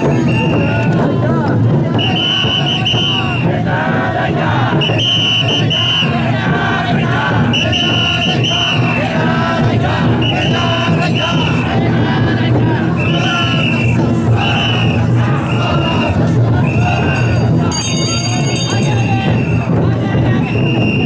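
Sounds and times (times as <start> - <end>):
crowd shouting and chanting: 0.0 - 21.0.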